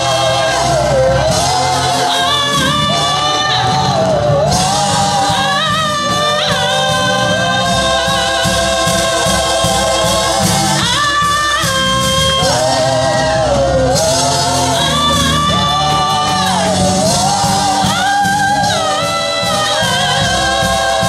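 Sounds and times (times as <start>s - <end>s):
keyboard: 0.0s - 21.0s
organ: 0.0s - 21.0s
women singing gospel song: 0.0s - 21.0s.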